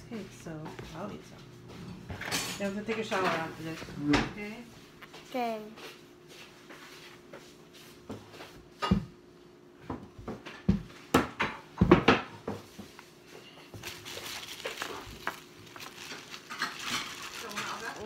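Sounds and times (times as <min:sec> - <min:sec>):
knocks and thumps on a table: 0:09.8 - 0:12.9
plastic bag crinkling: 0:13.8 - 0:18.0.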